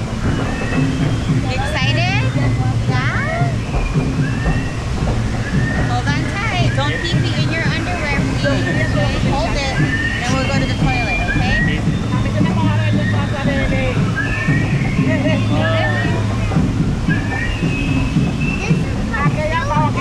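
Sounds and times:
people chattering: 0:00.0 - 0:20.0
water sloshing: 0:00.0 - 0:20.0.

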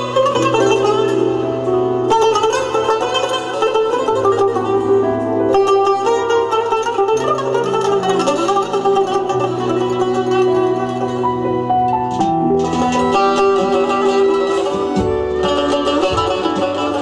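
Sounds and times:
plucked lute melody: 0:00.0 - 0:17.0.

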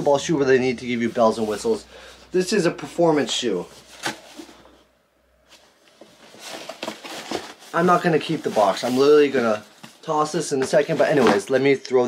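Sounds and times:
cardboard box rustling: 0:06.0 - 0:10.0.

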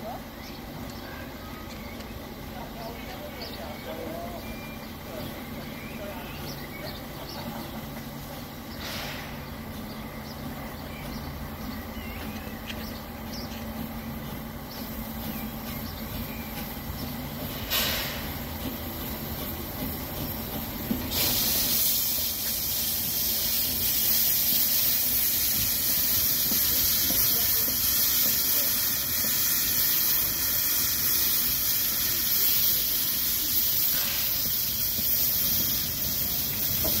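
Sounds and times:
steam locomotive low rumble: 0:00.0 - 0:37.0
steam hissing: 0:02.2 - 0:12.0, 0:12.9 - 0:37.0.

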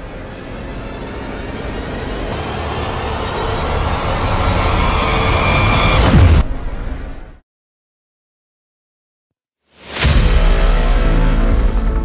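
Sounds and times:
dense rushing whoosh: 0:00.0 - 0:07.4.

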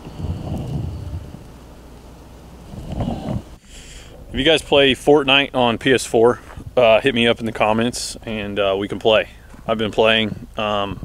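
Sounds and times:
wind buffeting microphone: 0:00.0 - 0:01.6.

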